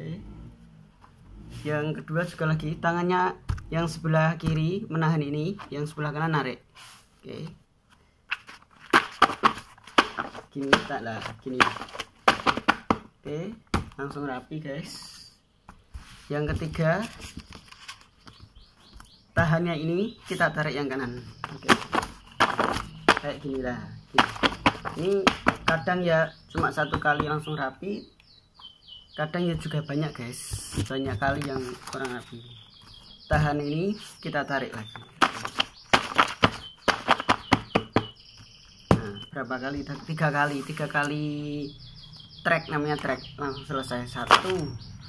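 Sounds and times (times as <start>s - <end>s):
paper rustling: 8.3s - 12.9s, 15.9s - 19.1s, 21.1s - 23.5s, 24.2s - 25.9s, 30.6s - 33.1s, 34.8s - 37.9s
paper stack tapping on desk: 8.9s - 13.1s, 21.4s - 23.4s, 24.2s - 25.9s, 35.0s - 38.2s.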